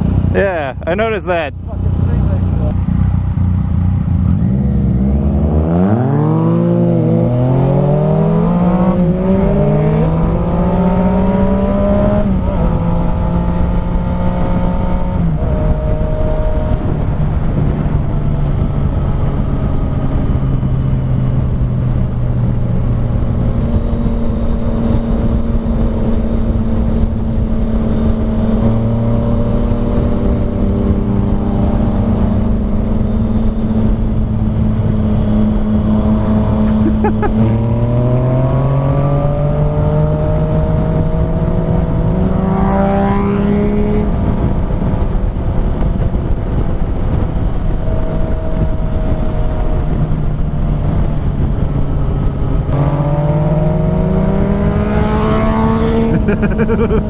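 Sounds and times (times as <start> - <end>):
motorcycle engine accelerating: 0.0 - 57.0
wind rush on helmet: 2.3 - 57.0.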